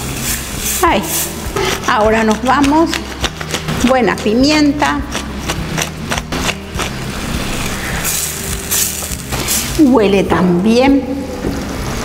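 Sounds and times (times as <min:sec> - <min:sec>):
sauce sizzling: 0:00.0 - 0:10.3, 0:11.0 - 0:12.0
pepper mill grinding clicks: 0:02.2 - 0:06.9.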